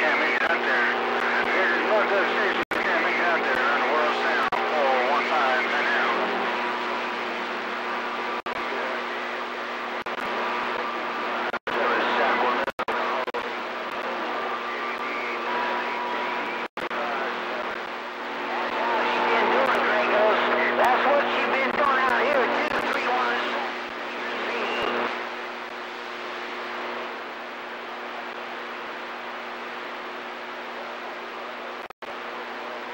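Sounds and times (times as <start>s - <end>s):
garbled radio voices: 0.0s - 9.3s, 9.9s - 25.2s
radio static: 0.0s - 32.9s
steady whistling tones: 24.4s - 25.0s.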